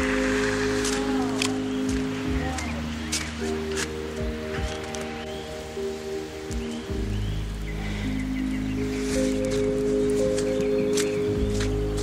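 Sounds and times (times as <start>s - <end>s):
music of slow sustained chords: 0.0s - 12.0s.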